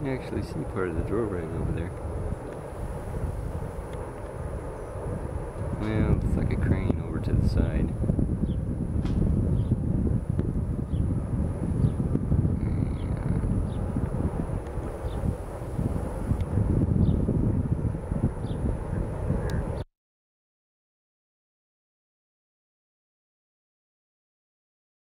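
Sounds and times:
wind buffeting microphone: 0:00.0 - 0:19.8.

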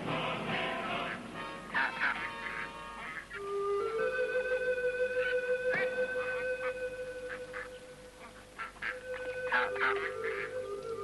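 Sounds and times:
waterfowl honking and quacking: 0:00.8 - 0:03.4, 0:05.2 - 0:10.8.

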